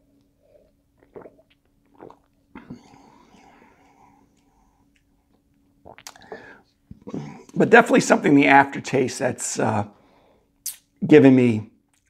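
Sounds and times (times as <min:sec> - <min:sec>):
low steady hum: 0:00.0 - 0:12.0
man sipping and swallowing: 0:00.1 - 0:07.6.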